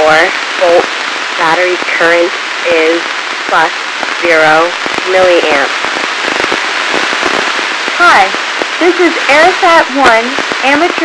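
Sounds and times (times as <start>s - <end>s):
radio static with crackling clicks: 0.0s - 11.0s.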